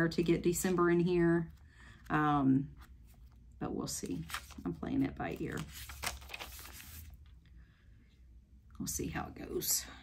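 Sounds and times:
paper page turning: 0:02.8 - 0:07.4.

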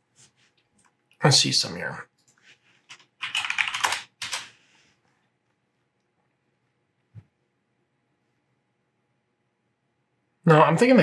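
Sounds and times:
typing on computer keyboard: 0:02.9 - 0:04.5.

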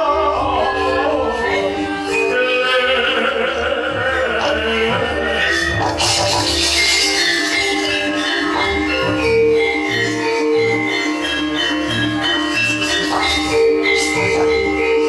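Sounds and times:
ringing metallophone notes: 0:00.0 - 0:15.0
bright percussion clatter: 0:05.6 - 0:15.0.

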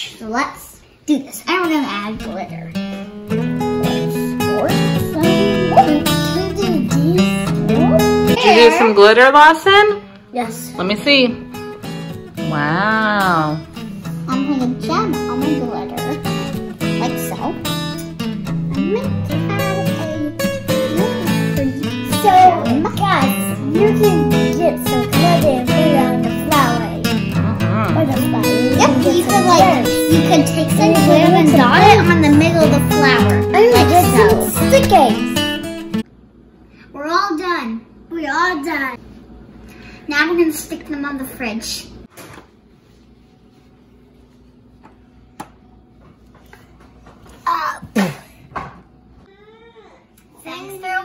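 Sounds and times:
strummed acoustic guitar: 0:01.5 - 0:08.7, 0:10.4 - 0:36.0.

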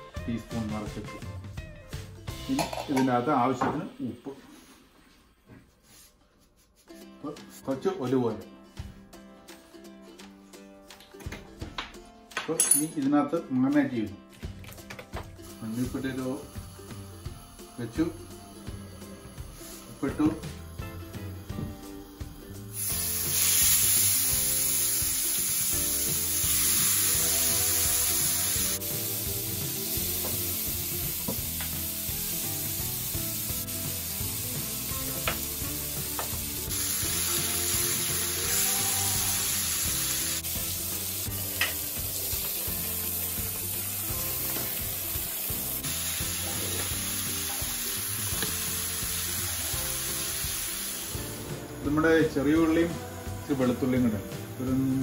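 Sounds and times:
fish sizzling in a frying pan: 0:15.4 - 0:55.0.

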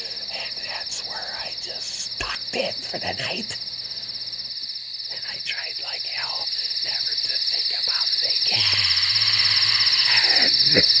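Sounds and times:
crickets chirping: 0:00.0 - 0:11.0
croaking calls: 0:06.1 - 0:11.0.

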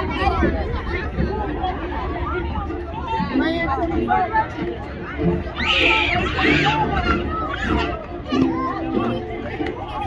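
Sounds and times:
young voices chattering and calling: 0:00.0 - 0:10.0.

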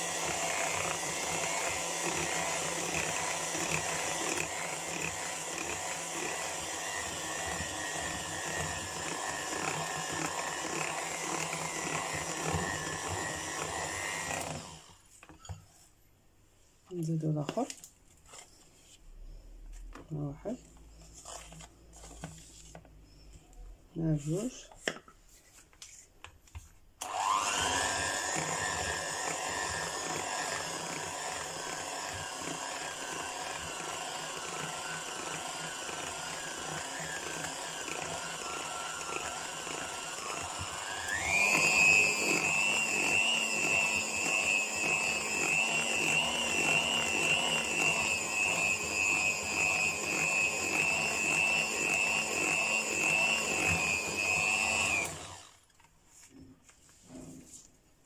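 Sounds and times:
electric hand mixer whining: 0:00.0 - 0:15.4, 0:20.4 - 0:23.3, 0:27.0 - 0:55.8.

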